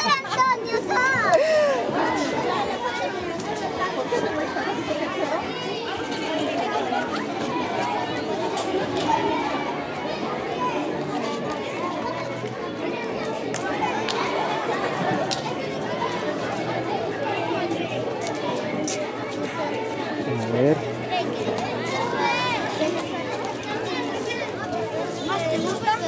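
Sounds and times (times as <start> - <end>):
children chattering: 0.0 - 26.0.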